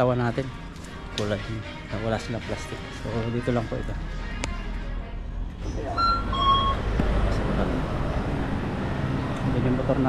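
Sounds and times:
traffic rumble: 0:04.0 - 0:10.0.

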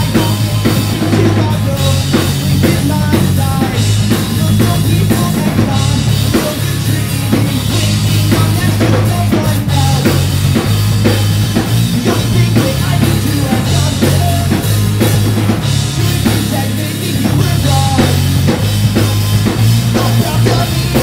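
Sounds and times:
bass line: 0:00.0 - 0:21.0
drum kit fast beat: 0:00.0 - 0:21.0
pop-punk band playing live: 0:00.0 - 0:21.0.

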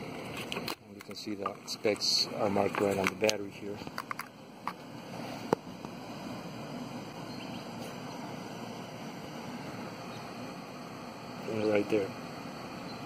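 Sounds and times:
steady background noise: 0:00.0 - 0:13.0.

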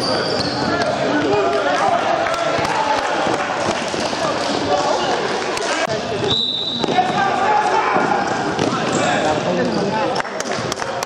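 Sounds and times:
people calling out in hall: 0:00.0 - 0:10.2
high whistle: 0:06.2 - 0:07.0.

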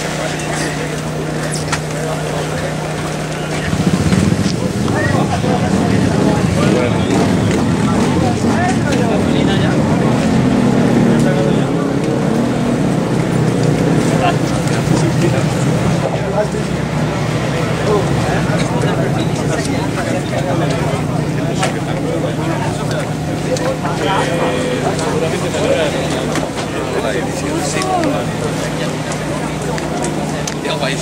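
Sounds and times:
motorcycle engine revving: 0:00.0 - 0:31.0
voices of people: 0:00.0 - 0:31.0.

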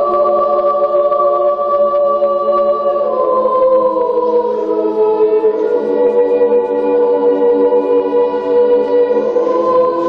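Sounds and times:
boys' choir singing chords: 0:00.0 - 0:10.0.

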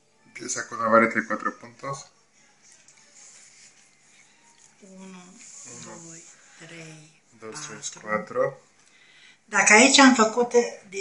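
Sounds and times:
faint high hiss: 0:00.0 - 0:10.3
woman speaking quietly: 0:04.6 - 0:08.0.

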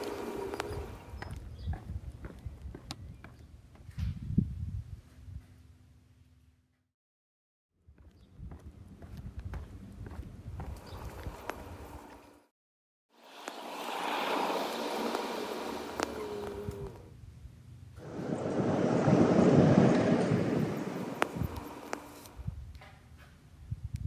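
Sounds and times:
rushing wind-like noise: 0:18.0 - 0:22.8.

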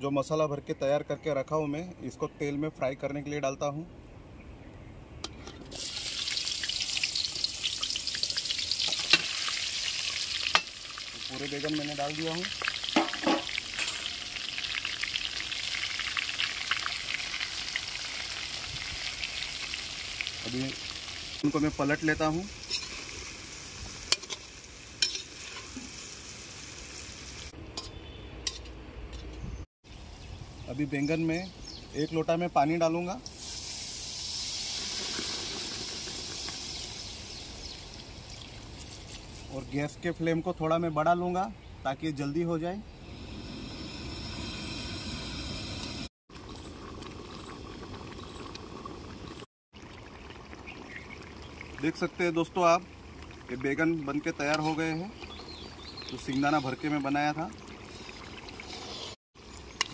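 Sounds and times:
vegetables sizzling in hot oil: 0:05.7 - 0:27.5, 0:33.3 - 0:37.9
curry bubbling in a pot: 0:46.3 - 0:59.9.

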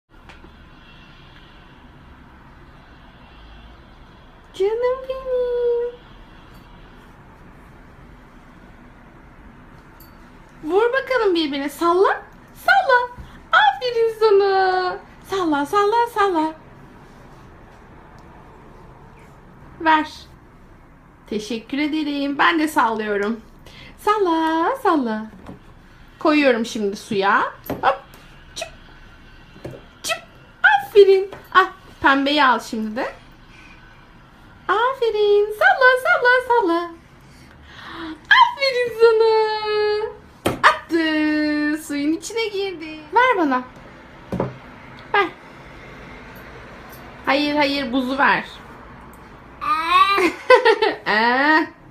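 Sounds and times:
faint background hum and hiss: 0:00.2 - 0:51.9.

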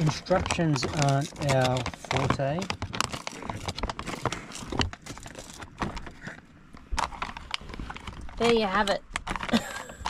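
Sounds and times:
plastic pouch crinkling: 0:00.0 - 0:10.0.

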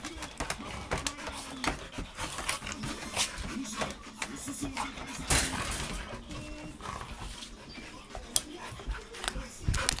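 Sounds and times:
dogs scuffling: 0:00.0 - 0:10.0.

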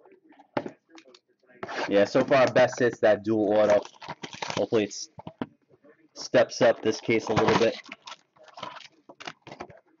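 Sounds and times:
man speaking: 0:00.0 - 0:03.9, 0:04.6 - 0:07.9
plastic shrink-wrap crinkling: 0:03.6 - 0:04.9, 0:06.9 - 0:09.6.

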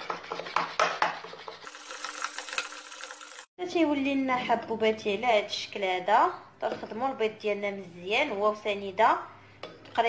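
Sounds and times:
whisk beating in a ceramic bowl: 0:00.0 - 0:03.2.

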